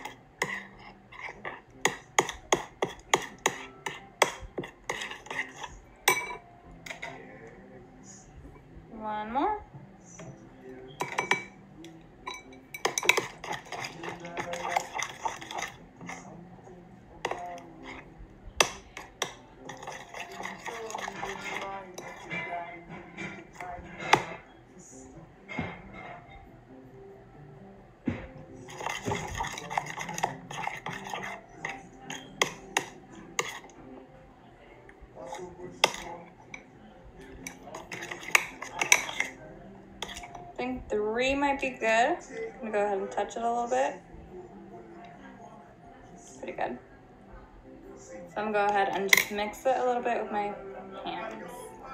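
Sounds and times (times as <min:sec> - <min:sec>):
spoon stirring slime: 0:00.0 - 0:07.8, 0:10.2 - 0:24.6, 0:28.4 - 0:34.0, 0:34.8 - 0:42.6
spoon clinking against glass: 0:01.9 - 0:07.1, 0:11.0 - 0:11.6, 0:12.2 - 0:15.8.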